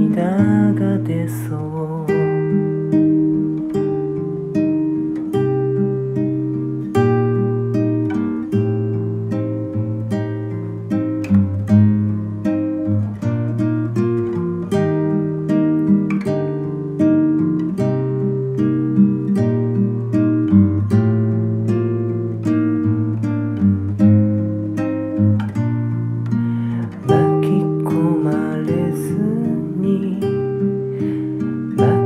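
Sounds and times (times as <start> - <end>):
acoustic guitar picking and strumming: 0.0 - 32.0.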